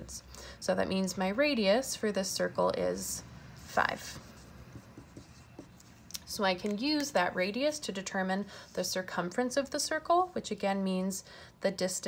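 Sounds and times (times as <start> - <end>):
marker pen strokes on board: 3.6 - 7.1.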